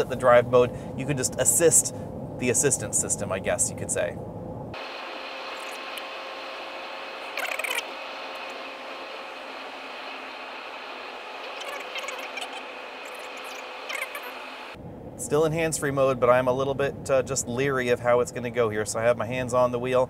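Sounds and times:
road and wind noise in car cabin: 0.0 - 20.0.

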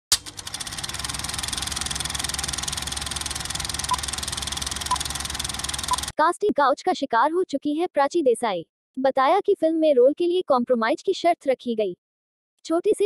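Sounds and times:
film projector clatter: 0.1 - 6.1
projector starting click: 0.1 - 6.1.

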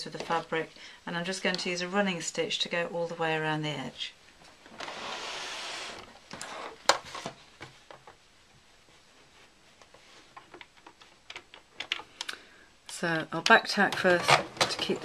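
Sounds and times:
fabric rustling: 4.3 - 11.3.

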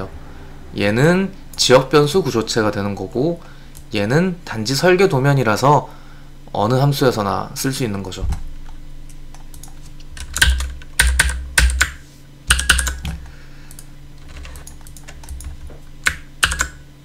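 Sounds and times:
faint low hum: 0.0 - 17.0
computer keyboard clicks: 9.3 - 16.8.

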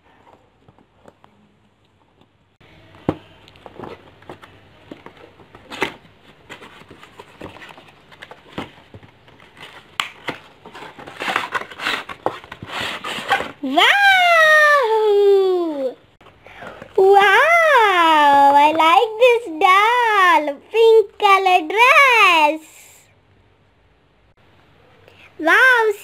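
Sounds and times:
cardboard packaging rustling: 3.5 - 13.6.

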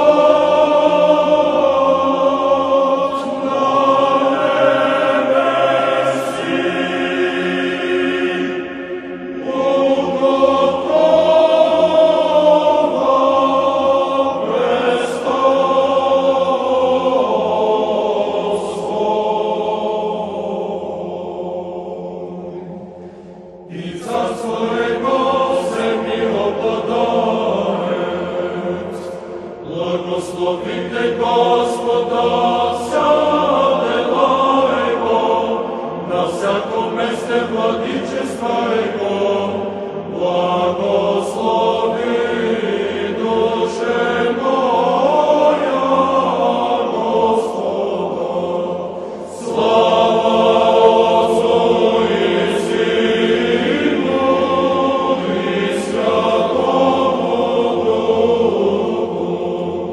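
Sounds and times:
choir chanting: 0.0 - 59.9.

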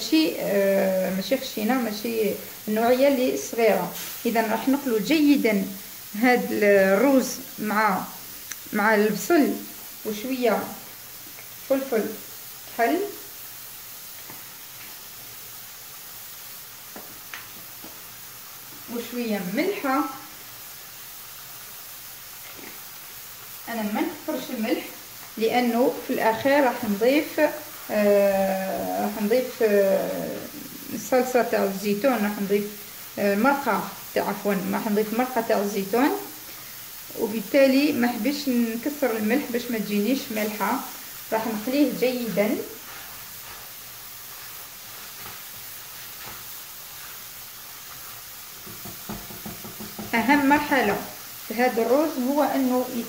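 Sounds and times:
rice and onion sizzling: 0.0 - 53.0.

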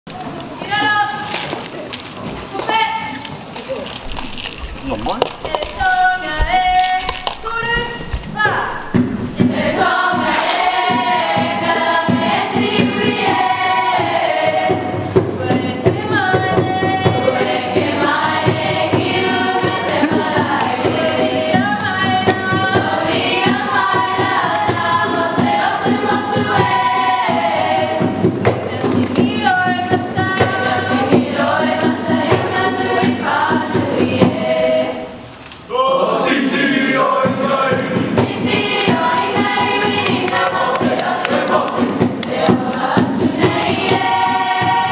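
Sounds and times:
steady beat: 4.8 - 35.0, 36.3 - 44.9
group singing in chorus: 8.9 - 44.9
percussive claps or stamps: 10.2 - 11.1, 38.2 - 44.1.

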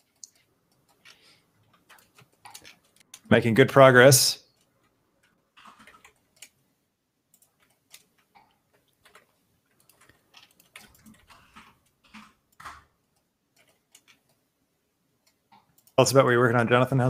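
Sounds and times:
mouse and keyboard clicks: 0.0 - 3.3, 7.3 - 14.4.

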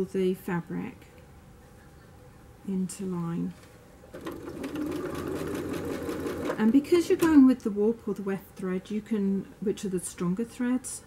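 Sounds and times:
electric sewing machine stitching: 4.1 - 7.4.

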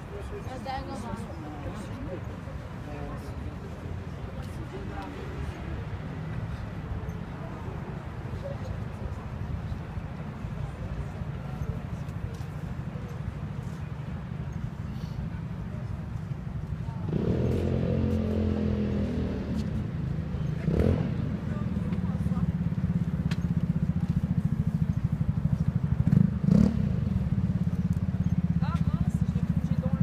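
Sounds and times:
people's voices: 0.0 - 30.0.

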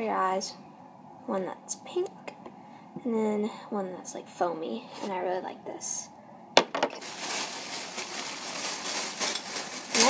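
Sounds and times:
packaging rustling: 6.8 - 10.0.

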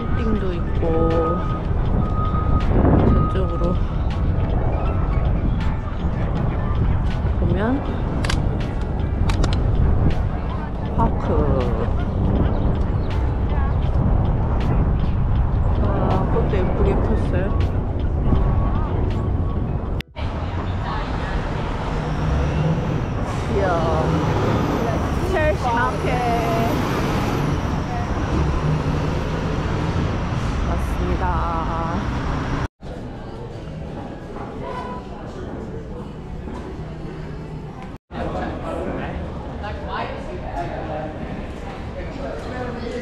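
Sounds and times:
people's voices: 0.0 - 1.6, 2.6 - 15.0, 15.7 - 30.0, 30.6 - 32.2
wind on microphone: 0.0 - 32.6
distant traffic: 0.0 - 43.0
passing cars and buses: 0.0 - 43.0.

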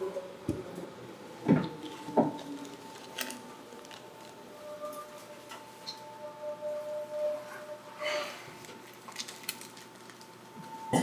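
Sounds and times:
faint electric train hum: 0.0 - 11.0.

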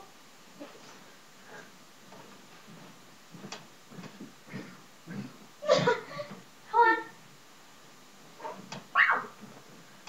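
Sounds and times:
person squealing: 9.0 - 9.4.

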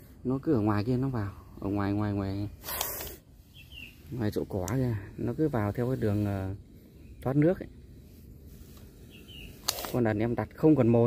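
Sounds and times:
faint bird chirps: 0.2 - 11.0
short loud hiss: 2.6 - 3.2.

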